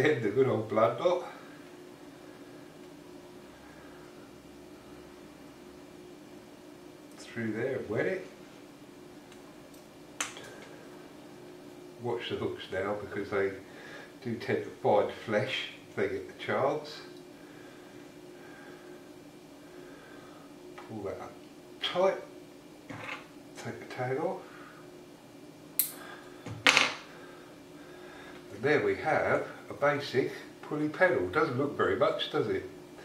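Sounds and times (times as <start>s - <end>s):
faint room hum: 0.0s - 33.0s
sharp click of swivel: 25.8s - 26.0s.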